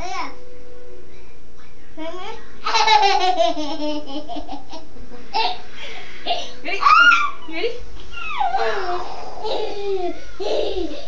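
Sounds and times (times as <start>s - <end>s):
adult and child laughing: 9.4s - 11.0s.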